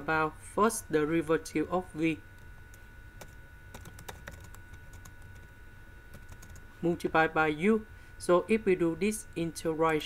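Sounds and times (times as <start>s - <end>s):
low steady hum: 0.0s - 10.0s
keyboard keystrokes: 3.2s - 5.5s.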